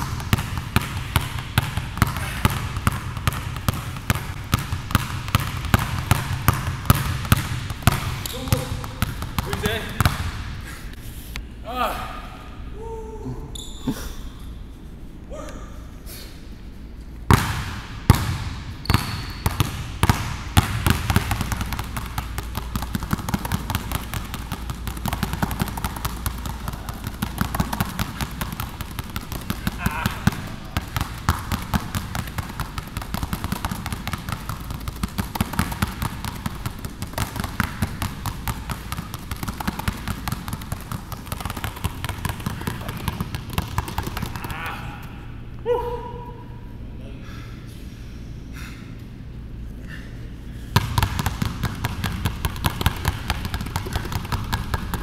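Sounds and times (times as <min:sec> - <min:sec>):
basketballs bouncing on hardwood: 0:00.0 - 0:10.5, 0:17.3 - 0:44.7, 0:50.7 - 0:55.0.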